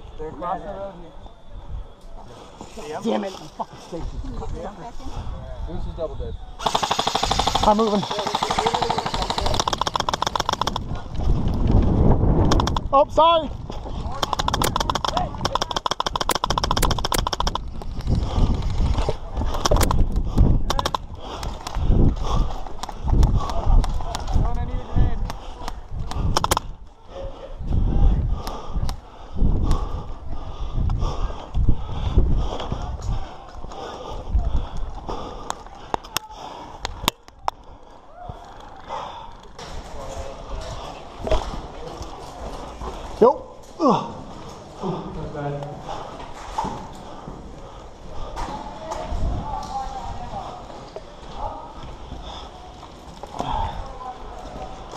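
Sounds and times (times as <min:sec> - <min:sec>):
airsoft rifle full-auto burst: 0:06.6 - 0:10.8
gear rattling: 0:06.6 - 0:12.9.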